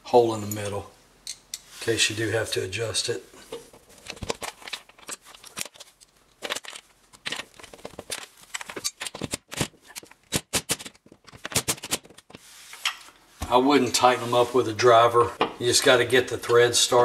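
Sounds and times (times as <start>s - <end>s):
screwdriver clicking and scraping: 4.2s - 13.0s.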